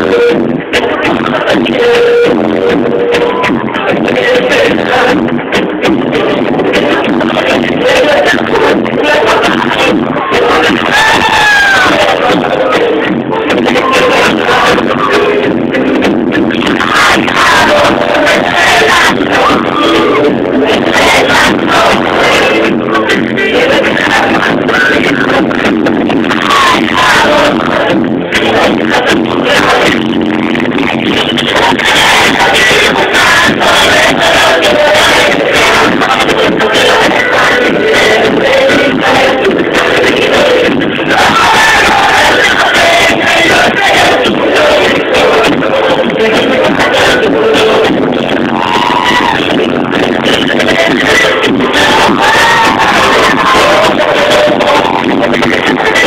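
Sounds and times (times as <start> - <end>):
drum hits: 0.0 - 56.0
live pop band music: 0.0 - 56.0
person singing lead vocal: 0.0 - 56.0.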